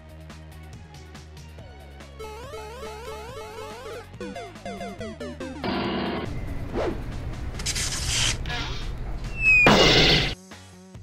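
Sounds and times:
chiptune game music: 0:02.1 - 0:06.6
short falling whistle: 0:09.3 - 0:09.9.

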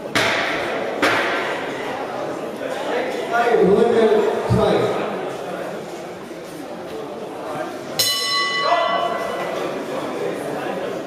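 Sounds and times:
murmur of voices: 0:00.0 - 0:11.0
boxing ring bell: 0:08.0 - 0:09.6.

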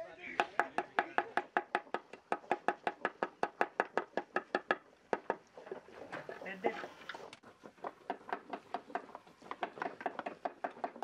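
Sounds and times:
fast sharp wooden knocks: 0:00.4 - 0:06.7, 0:07.4 - 0:11.0.

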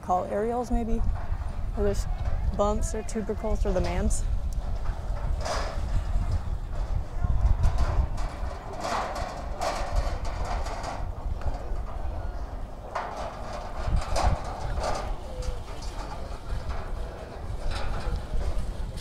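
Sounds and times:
low rumble: 0:00.0 - 0:19.0.

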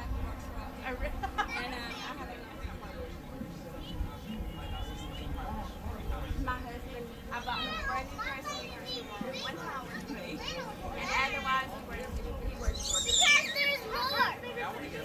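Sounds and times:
children chattering in a crowd: 0:00.0 - 0:15.0
loud high shout: 0:12.7 - 0:14.3.

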